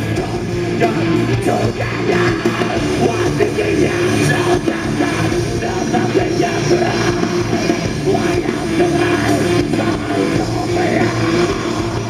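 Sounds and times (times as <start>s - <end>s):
distorted electric guitars: 0.0s - 12.0s
drums: 0.0s - 12.0s
live metal band: 0.0s - 12.0s.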